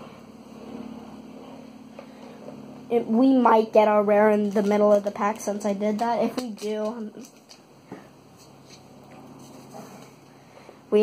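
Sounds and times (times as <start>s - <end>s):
faint low rumble: 0.0s - 4.6s.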